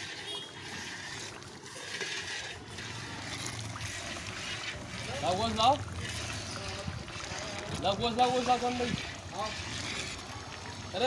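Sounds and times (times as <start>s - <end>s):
metal ladle stirring gravy in pot: 0.0s - 11.0s.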